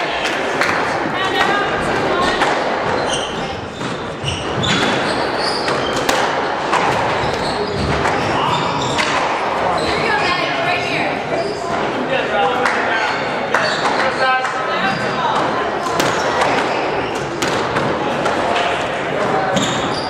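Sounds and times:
squash ball hitting walls: 0:00.0 - 0:09.7, 0:15.3 - 0:20.0.

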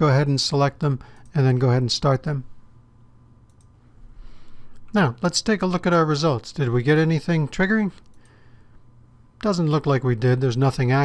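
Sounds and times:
faint computer mouse clicks: 0:03.5 - 0:03.8.

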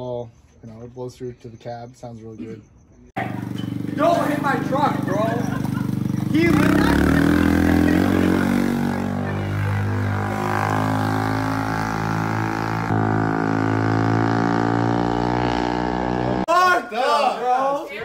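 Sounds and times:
men talking and laughing: 0:02.2 - 0:11.9
quad engine running: 0:03.2 - 0:16.4.

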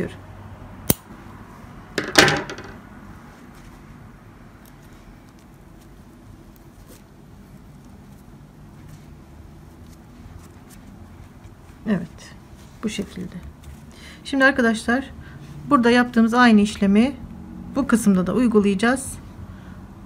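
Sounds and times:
faint handling of cord: 0:03.2 - 0:13.9.

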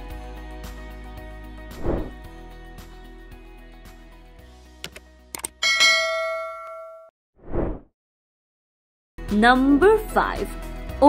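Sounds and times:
short whoosh: 0:01.8 - 0:02.2, 0:07.4 - 0:07.9
mouse clicks: 0:04.8 - 0:05.6
bright bell ding: 0:05.6 - 0:07.1
quiet background music: 0:09.2 - 0:11.0.

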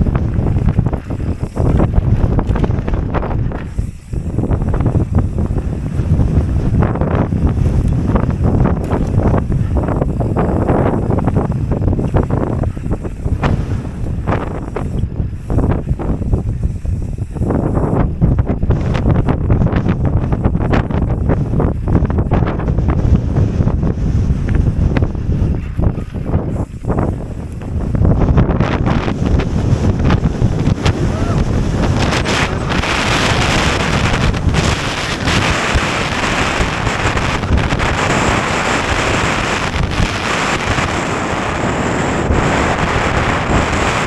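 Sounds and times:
bike rattling and knocking: 0:00.0 - 0:40.7
tyres rumbling over rough ground: 0:00.0 - 0:44.0
wind buffeting microphone: 0:00.0 - 0:44.0.

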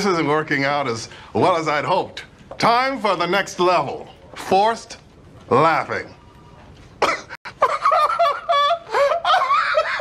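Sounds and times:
people laughing: 0:07.5 - 0:10.0.

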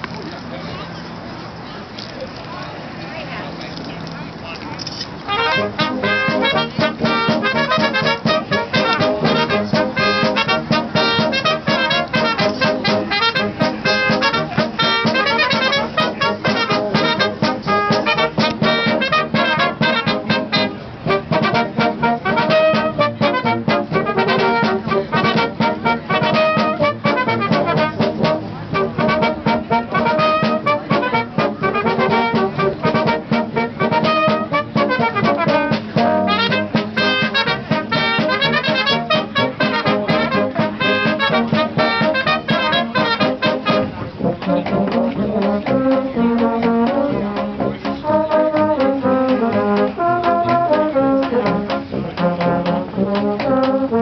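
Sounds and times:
brass band playing: 0:05.2 - 0:54.0
tuba bass line: 0:05.3 - 0:54.0.

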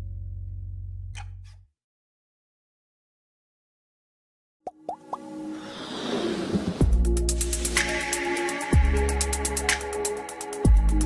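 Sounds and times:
swoosh: 0:05.3 - 0:08.3
electronic music: 0:06.8 - 0:11.0.

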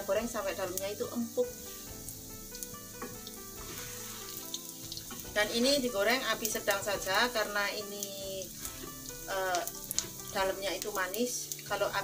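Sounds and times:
food sizzling in oil: 0:00.0 - 0:12.0.

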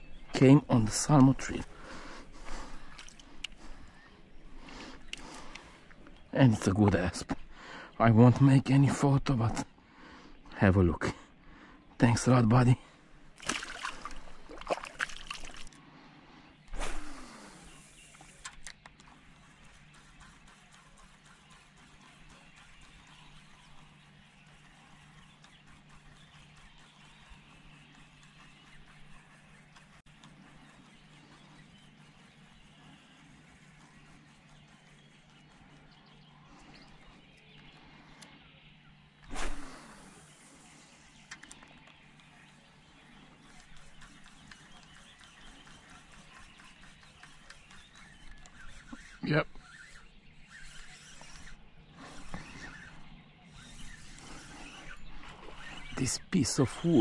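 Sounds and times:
fishing rod cast swish: 0:39.2 - 0:39.8.

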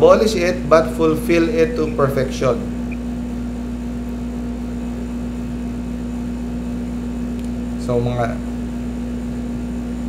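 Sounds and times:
low room drone: 0:00.0 - 0:10.0
steady pitched tone: 0:01.7 - 0:03.1.

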